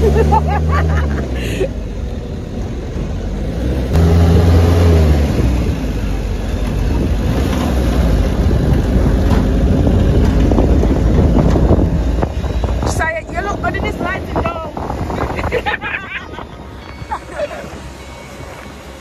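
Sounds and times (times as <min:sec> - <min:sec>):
truck engine and road noise: 0:00.0 - 0:19.0
wind buffeting microphone: 0:05.2 - 0:18.9.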